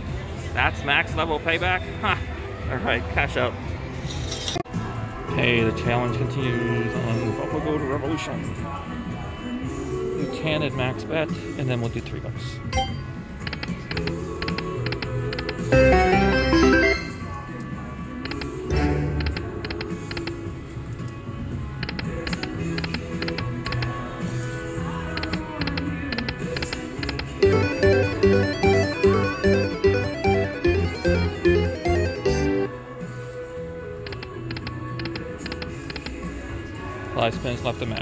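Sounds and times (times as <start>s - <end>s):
slot machine game music: 5.4s - 8.4s, 12.7s - 17.4s, 18.3s - 20.4s, 25.1s - 32.8s
rhythmic pulsing tune: 12.8s - 17.2s, 25.2s - 32.7s.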